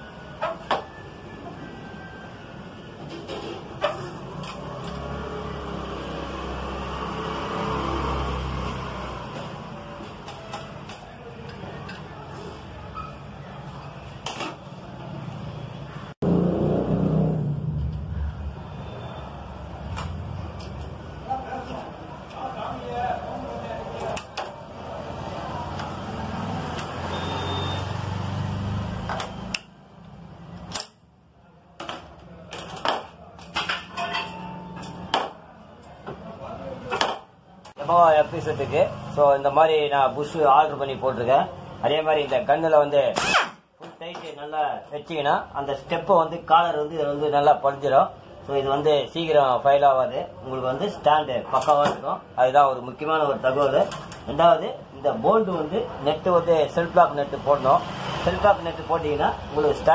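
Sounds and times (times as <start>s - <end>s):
vehicle engine passing by: 4.2s - 9.6s, 16.2s - 21.3s, 24.7s - 29.5s, 57.3s - 59.9s.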